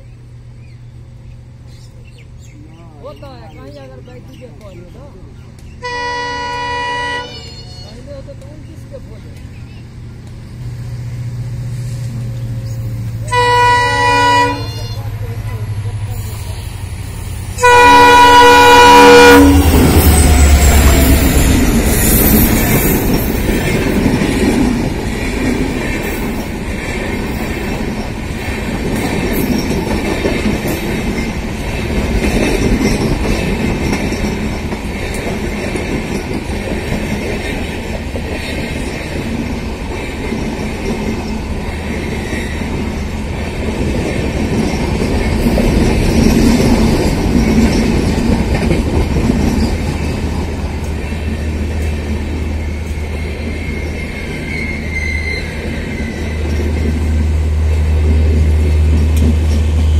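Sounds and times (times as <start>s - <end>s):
diesel locomotive passing: 0.0s - 59.9s
train coaches rumbling on rails: 0.0s - 59.9s.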